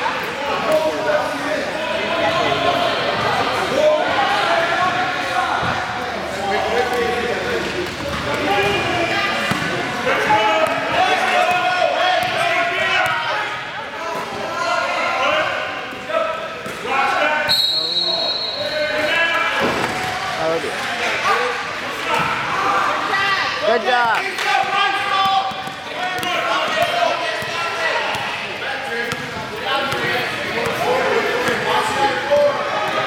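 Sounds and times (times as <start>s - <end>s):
shouting and chatter: 0.0s - 33.0s
whistle blast: 17.5s - 18.8s.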